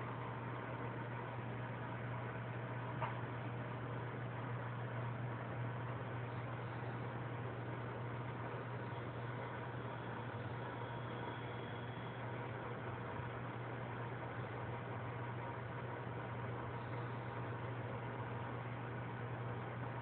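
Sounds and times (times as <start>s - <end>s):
aquarium equipment humming: 0.0s - 20.0s.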